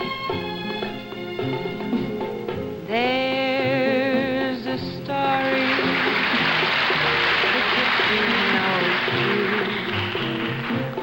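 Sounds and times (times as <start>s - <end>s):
person singing: 2.9s - 5.9s, 7.0s - 10.2s.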